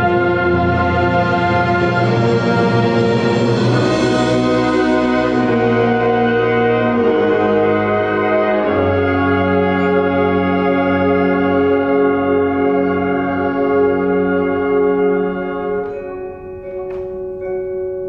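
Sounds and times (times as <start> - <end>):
concert band brass chords: 0.0 - 17.6.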